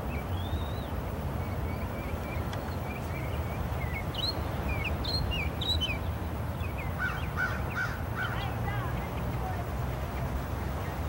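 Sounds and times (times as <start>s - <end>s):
birds chirping: 0.0s - 11.0s
low repeated bird calls: 0.0s - 11.0s.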